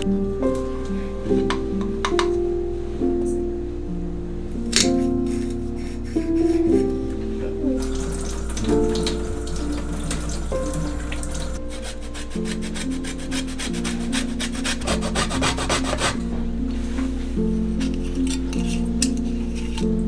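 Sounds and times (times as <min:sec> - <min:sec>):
soft background music: 0:00.0 - 0:20.0.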